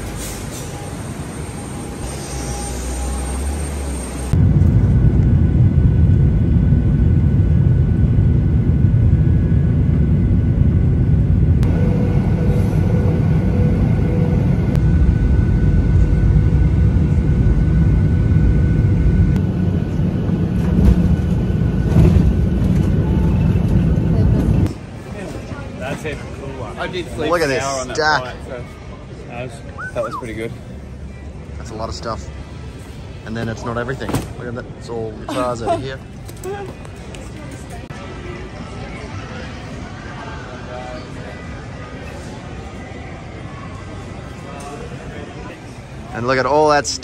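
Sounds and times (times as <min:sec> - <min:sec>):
jet engine cabin drone: 0:00.0 - 0:33.3.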